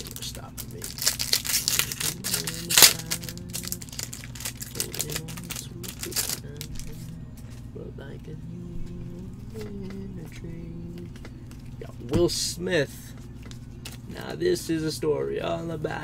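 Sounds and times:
wrapper crinkling: 0.0 - 7.0.

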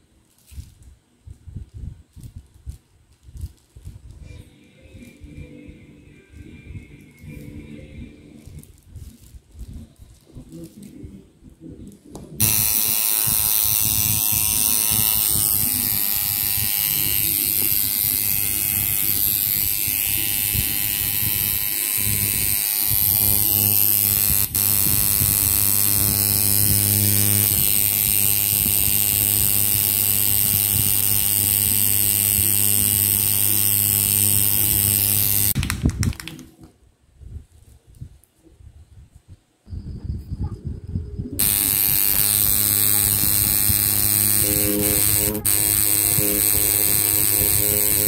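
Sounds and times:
tattoo machine electric buzz: 12.4 - 35.6, 41.4 - 48.0.

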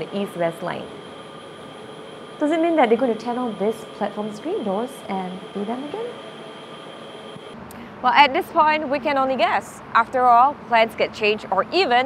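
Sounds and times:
station platform hiss: 0.0 - 7.6
faint high-pitched whine: 0.0 - 8.8.

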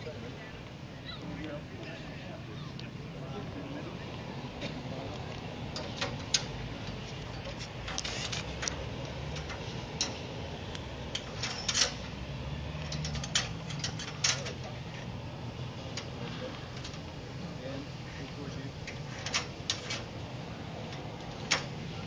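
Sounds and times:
metallic clicks of carabiners: 5.7 - 14.8, 18.8 - 20.1.

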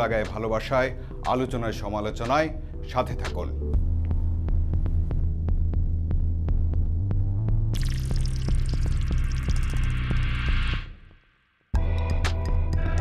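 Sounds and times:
deep throbbing bass drone: 3.8 - 11.0.

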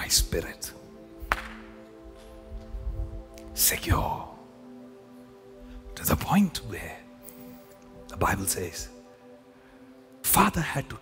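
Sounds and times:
sharp snap: 1.2 - 1.8.

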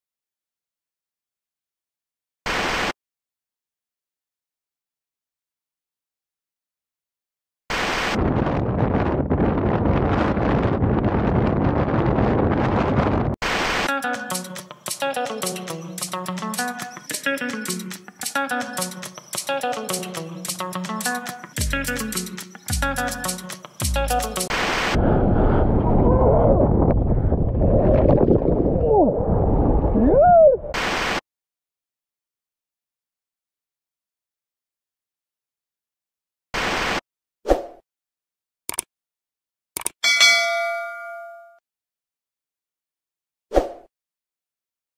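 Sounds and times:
wind buffeting microphone: 8.2 - 13.4, 25.0 - 30.7
static hiss burst: 24.4 - 25.0, 30.8 - 31.2.

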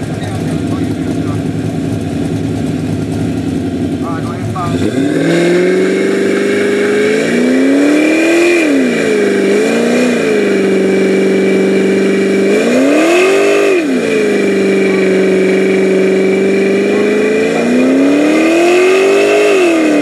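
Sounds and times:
car engine revving high: 0.0 - 20.0.

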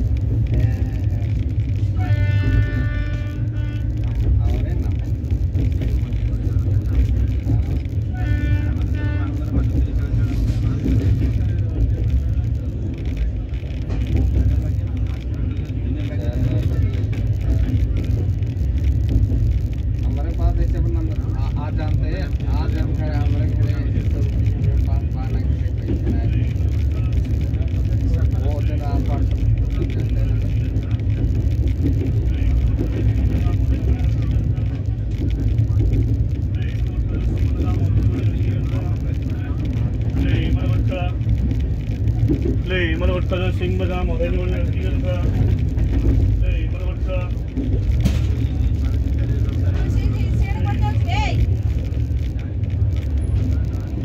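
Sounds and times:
faint passenger voices: 0.0 - 54.0
train rumbling from inside: 0.0 - 54.0.

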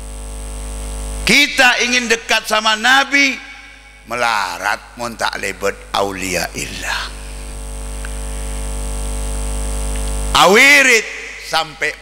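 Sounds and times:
buzzy electrical mains hum: 0.0 - 12.0.

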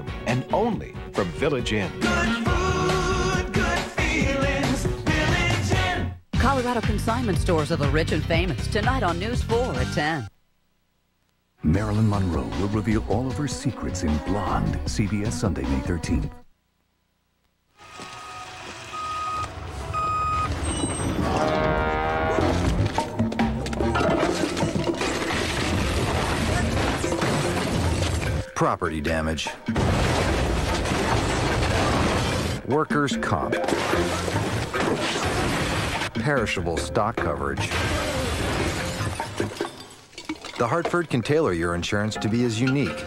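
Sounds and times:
truck reversing alarm beeping: 18.2 - 21.4
glass window shattering: 23.8 - 28.4, 29.7 - 32.6, 33.6 - 36.1, 37.6 - 41.3.

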